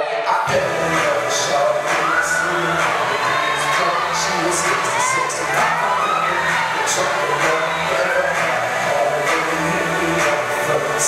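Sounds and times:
man singing into microphone: 0:00.0 - 0:11.0
r and b band playing: 0:00.4 - 0:11.0.

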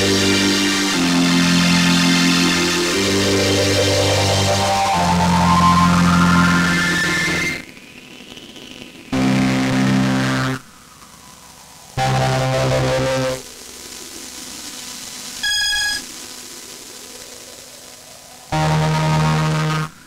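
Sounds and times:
string synth chords: 0:00.0 - 0:07.6
steady hiss: 0:00.0 - 0:20.0
bright high synth note: 0:15.4 - 0:16.0.

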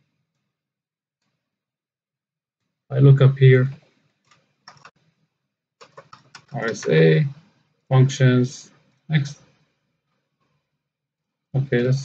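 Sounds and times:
faint keyboard clicks: 0:04.3 - 0:05.0, 0:05.8 - 0:07.0.

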